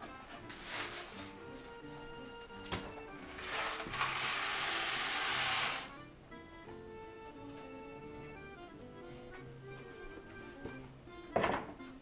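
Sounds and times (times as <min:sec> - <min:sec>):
background music: 0:00.0 - 0:12.0
dry macaroni poured into pot: 0:03.4 - 0:05.9.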